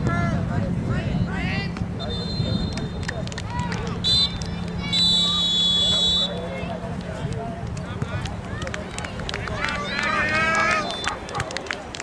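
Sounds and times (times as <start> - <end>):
steady low rumble: 0.0 - 10.2.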